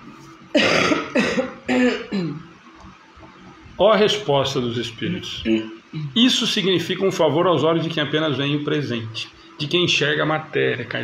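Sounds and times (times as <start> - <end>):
woman coughing: 0.5 - 2.4.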